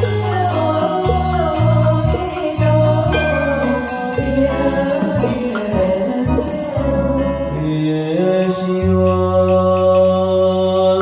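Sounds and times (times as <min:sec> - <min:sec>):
liturgical chanting: 0:00.0 - 0:11.0.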